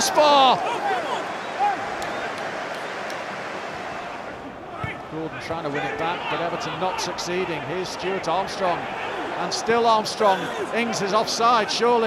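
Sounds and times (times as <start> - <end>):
stadium crowd ambience: 0.0 - 12.0.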